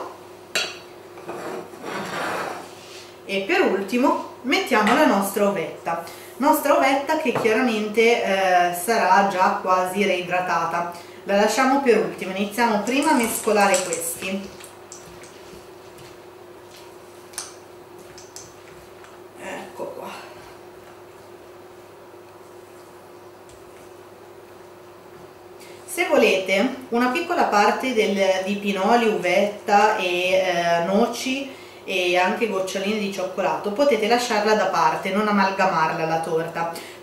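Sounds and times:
spatula scraping plate: 1.2 - 2.8.

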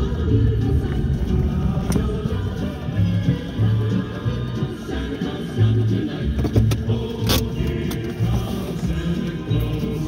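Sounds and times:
car driving: 0.0 - 10.0
music playing: 0.0 - 10.0.

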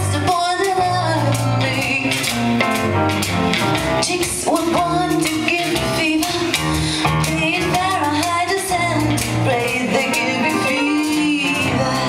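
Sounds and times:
acoustic band playing jazz-blues: 0.0 - 12.0.

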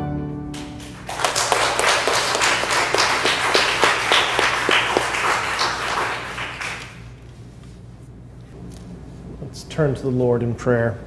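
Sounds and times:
congregation applauding: 0.6 - 7.2.

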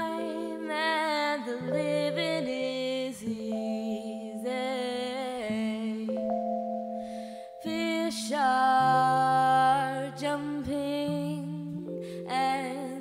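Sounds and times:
sliding melody line: 0.0 - 8.4
low keyboard chords: 0.0 - 13.0.

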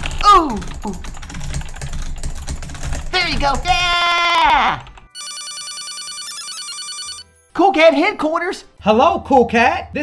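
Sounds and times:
telephone electronic warbling ring: 5.2 - 7.2.

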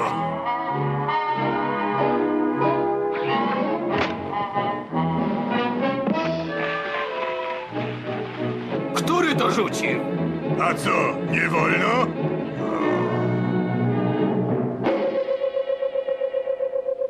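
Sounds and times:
orchestral brass melody: 0.0 - 14.7.

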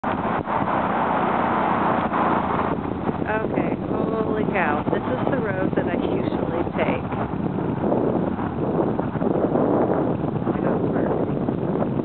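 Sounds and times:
steady rushing noise: 0.0 - 12.0
person speaking: 3.3 - 7.1.

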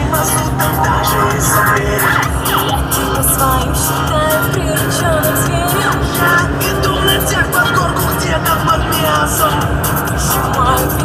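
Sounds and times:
electronic music with beat: 0.0 - 11.0
gliding synth notes: 0.0 - 11.0.

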